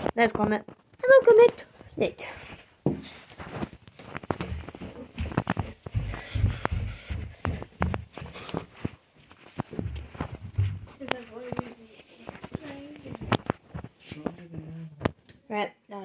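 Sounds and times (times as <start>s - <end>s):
small knocks and rustles: 0.0s - 15.3s
footsteps on carpeted stairs: 0.4s - 14.8s.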